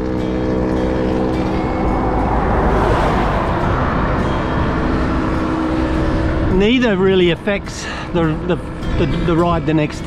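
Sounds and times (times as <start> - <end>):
vehicle passing: 0.0 - 8.9.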